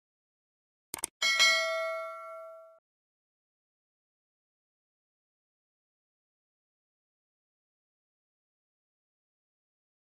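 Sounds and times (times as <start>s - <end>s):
quick double click: 0.9s - 1.1s
bright bell ding: 1.2s - 2.8s.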